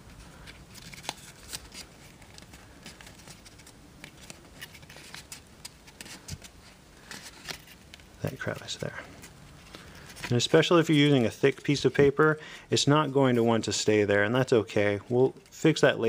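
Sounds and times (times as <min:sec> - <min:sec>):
paper crinkling under fingertips: 0:00.4 - 0:12.4.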